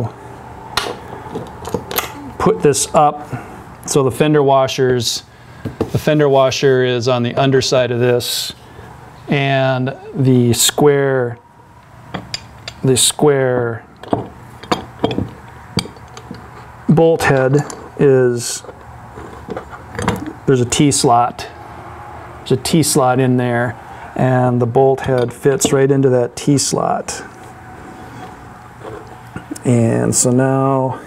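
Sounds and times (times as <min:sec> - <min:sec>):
metal clamp clinking on bench: 0:01.6 - 0:02.2, 0:14.0 - 0:16.4.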